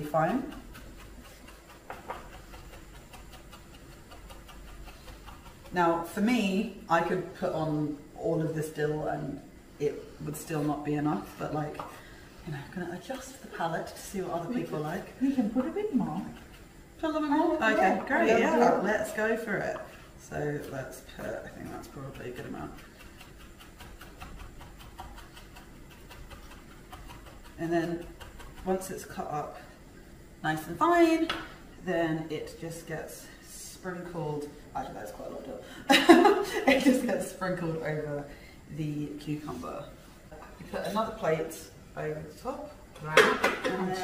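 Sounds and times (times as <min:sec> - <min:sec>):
knife chopping on wooden board: 0:00.2 - 0:05.8.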